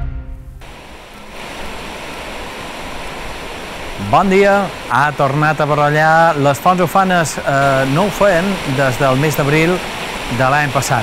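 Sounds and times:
water rushing: 0.6s - 11.0s.

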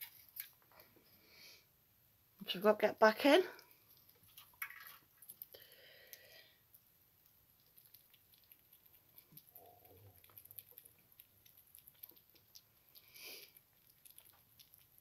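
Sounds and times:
small animal chewing clicks: 3.6s - 15.0s.

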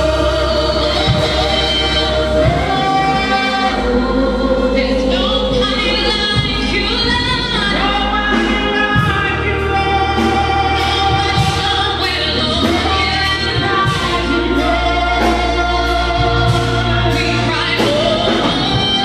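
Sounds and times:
instrumental accompaniment: 0.0s - 19.0s
women singing in harmony: 0.0s - 19.0s.

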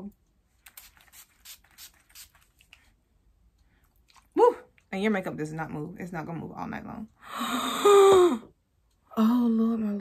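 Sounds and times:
spray bottle hissing: 0.7s - 2.4s.

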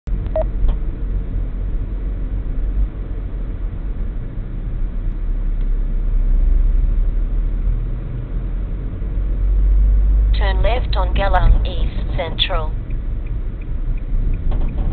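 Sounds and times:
car driving low rumble: 0.1s - 14.9s.

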